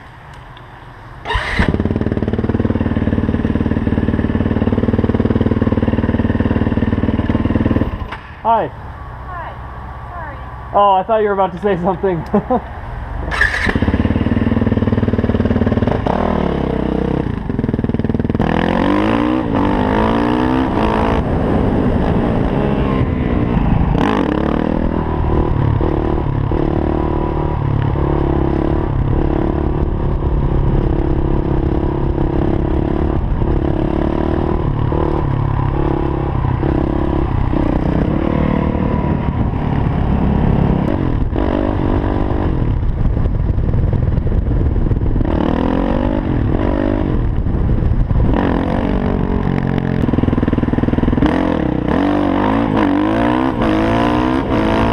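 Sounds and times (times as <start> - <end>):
motorcycle engine revving: 1.2 - 8.6, 13.2 - 54.9.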